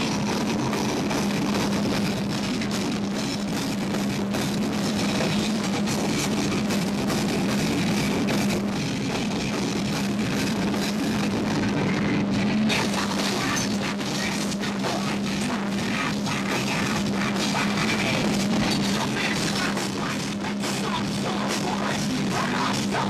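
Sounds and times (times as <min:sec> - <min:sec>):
metal band playing live: 0:00.0 - 0:23.0.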